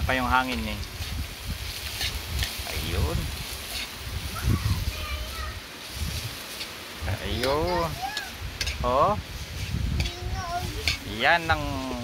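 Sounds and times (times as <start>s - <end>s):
faint sizzle: 0.0s - 12.0s
wind rumbling on microphone: 0.0s - 12.0s
metal spoon scraping metal pan: 1.8s - 2.7s, 3.6s - 4.0s, 8.6s - 8.8s, 10.8s - 11.1s.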